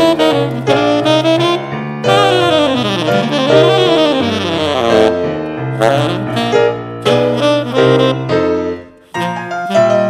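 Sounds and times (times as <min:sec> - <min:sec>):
grand piano accompaniment: 0:00.0 - 0:10.0
tenor saxophone jazz line: 0:00.0 - 0:10.0.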